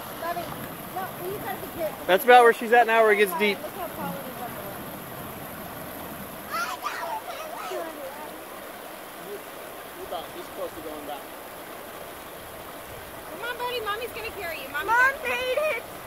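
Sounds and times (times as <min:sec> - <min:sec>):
river water rushing over rocks: 0:00.0 - 0:16.0
distant voices calling out: 0:00.1 - 0:10.0.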